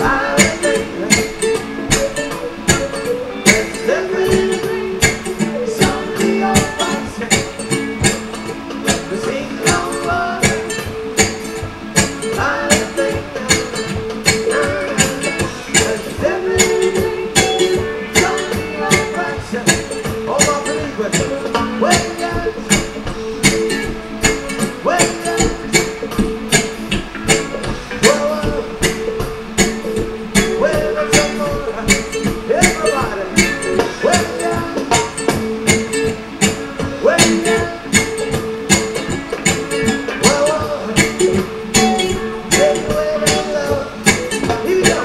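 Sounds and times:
electric ukulele strumming: 0.0 - 45.0.

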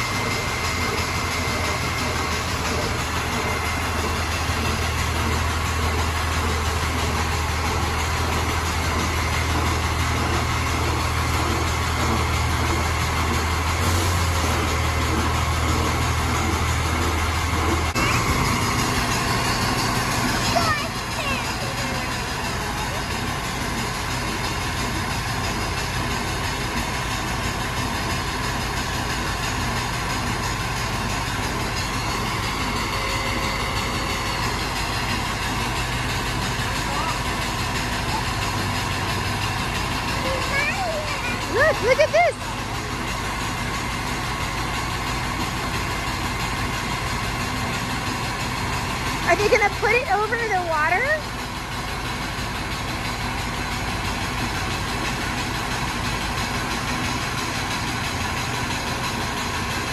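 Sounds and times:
diesel truck engines idling: 0.0 - 59.9.

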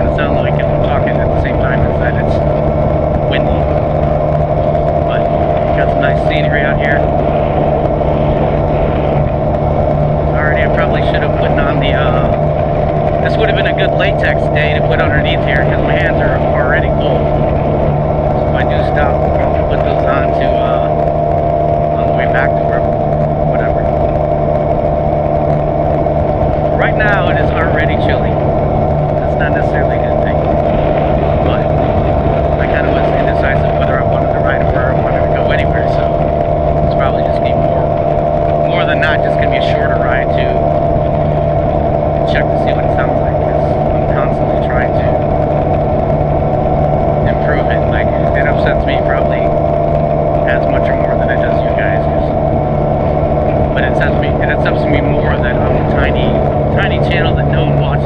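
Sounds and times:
motorcycle engine cruising: 0.0 - 58.0
wind noise on microphone: 0.0 - 58.0.

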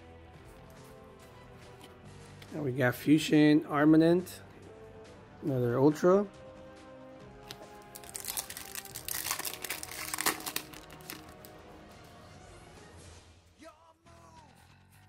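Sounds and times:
background music: 0.0 - 15.0
foil wrapper crinkling: 7.4 - 11.5.

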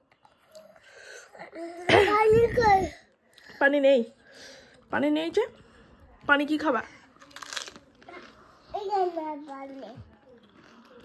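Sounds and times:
toddler crunching and chewing snack: 5.5 - 11.0.

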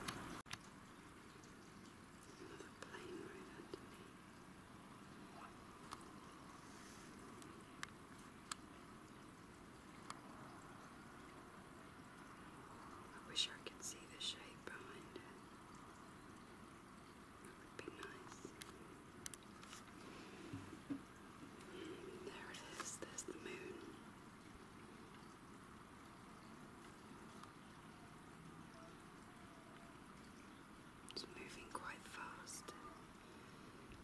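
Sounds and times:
faint steady hiss: 0.0 - 34.0.

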